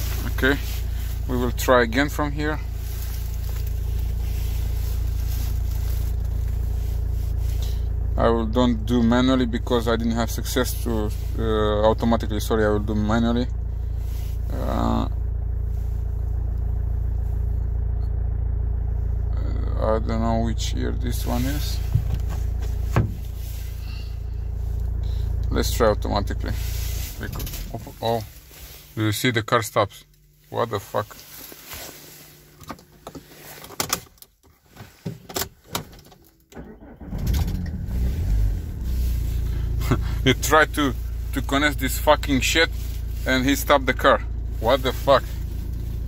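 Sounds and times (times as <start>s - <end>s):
car engine idling: 0.0s - 46.0s
clicks and knocks in car cabin: 21.9s - 23.3s, 32.6s - 36.4s.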